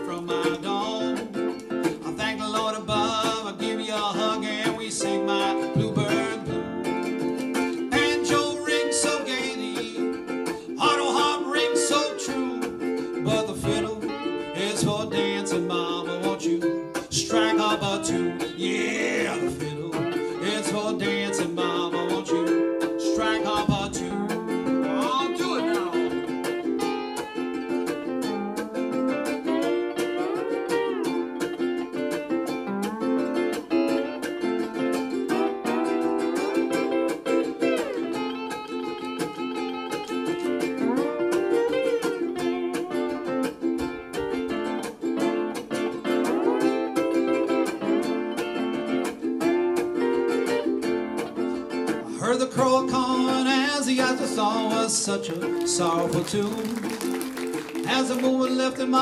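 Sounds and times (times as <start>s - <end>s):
sliding steel guitar lead: 0.0s - 59.0s
ukulele strumming: 0.0s - 59.0s.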